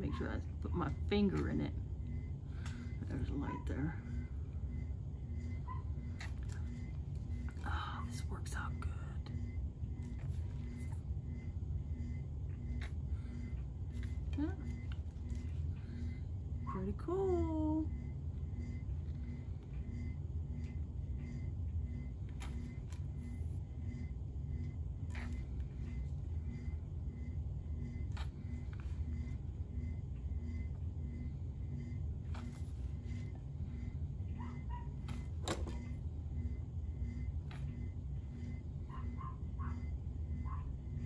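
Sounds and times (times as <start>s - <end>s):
low hum with regular pulse: 0.0s - 41.0s.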